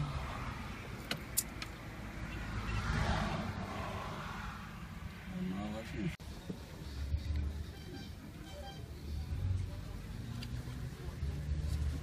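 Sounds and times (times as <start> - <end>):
low traffic rumble: 0.0 - 12.0
vehicle passing by: 1.8 - 6.2.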